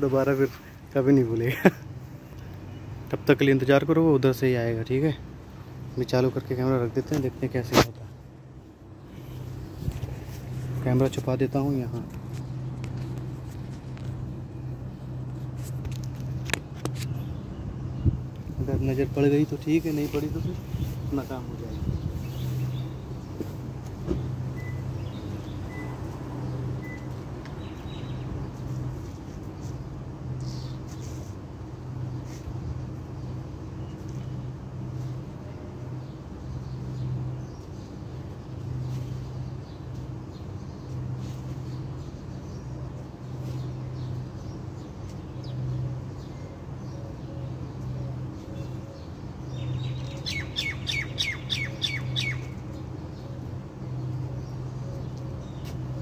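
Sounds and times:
vehicle engine idling: 0.1 - 40.2
faint high beeps: 24.6 - 24.9.

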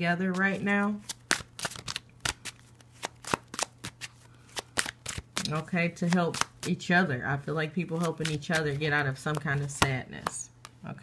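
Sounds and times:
cards being shuffled: 0.3 - 6.8, 7.8 - 10.8.

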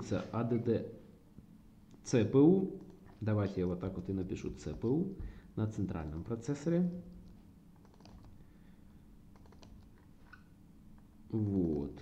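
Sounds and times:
computer keyboard keystrokes: 7.2 - 8.4, 9.3 - 10.0, 11.4 - 11.9.

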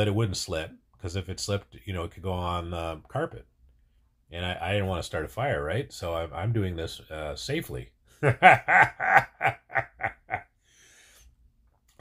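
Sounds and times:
man laughing: 8.2 - 10.6.

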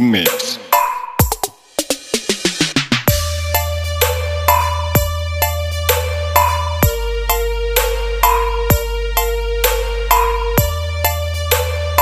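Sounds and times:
percussion hits: 0.3 - 12.0
deep bass drum falling pitch: 3.1 - 12.0
deep bass note: 3.1 - 12.0
high synth melody: 3.1 - 12.0.

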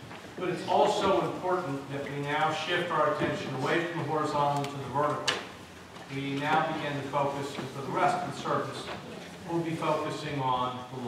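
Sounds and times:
man speaking: 0.4 - 5.4, 6.1 - 11.0.

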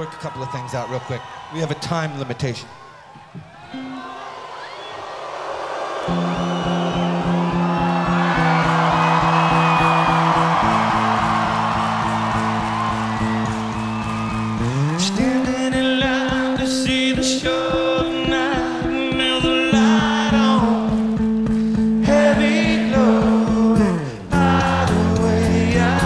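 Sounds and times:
crowd cheering: 0.0 - 26.0.

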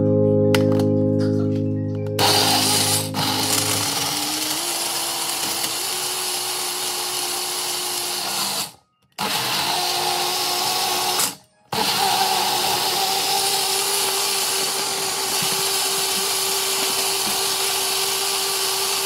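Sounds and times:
blender motor whirring: 2.2 - 19.0.

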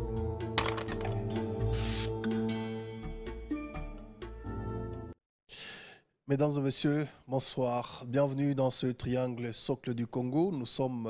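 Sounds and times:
breathy inhale into microphone: 5.5 - 6.1.

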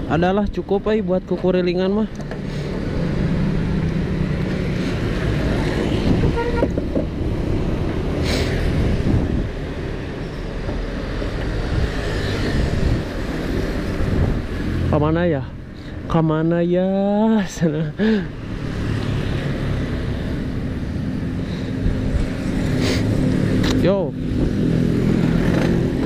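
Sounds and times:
traffic passing: 0.0 - 26.0.

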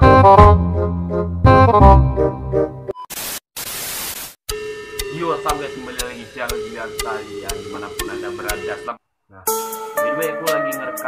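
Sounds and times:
static hiss bursts: 3.1 - 4.4.

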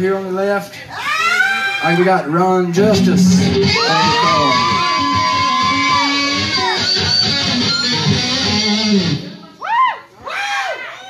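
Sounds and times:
distorted electric guitar solo: 2.8 - 9.5.

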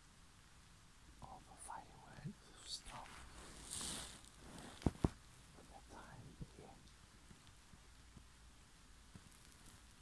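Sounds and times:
person whispering: 1.2 - 4.0, 5.5 - 6.9.

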